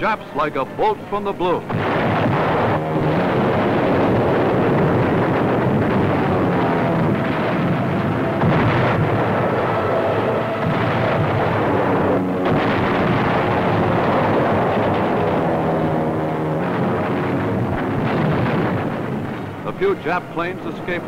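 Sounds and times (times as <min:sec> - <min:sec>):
droning tones: 0:00.0 - 0:21.0
rumbling roar of explosions: 0:00.0 - 0:21.0.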